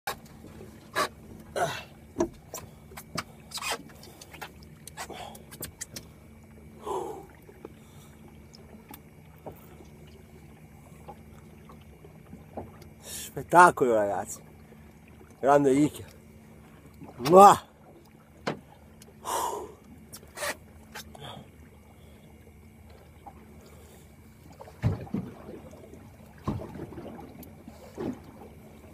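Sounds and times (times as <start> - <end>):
faint steady hum: 0.1 - 28.9.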